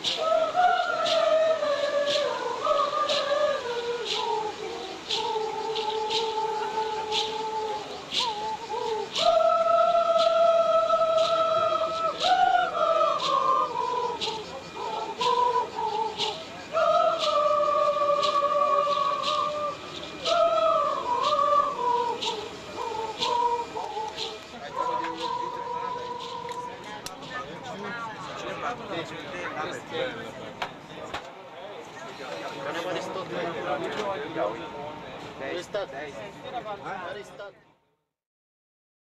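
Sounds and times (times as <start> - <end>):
person chanting a long note: 0.2 - 26.9.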